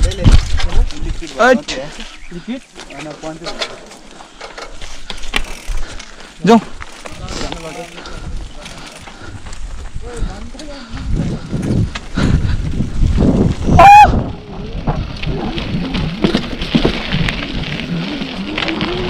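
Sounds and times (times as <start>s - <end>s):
wind noise: 0.0s - 2.4s, 7.1s - 19.0s
bike tyre rumble: 0.0s - 19.0s.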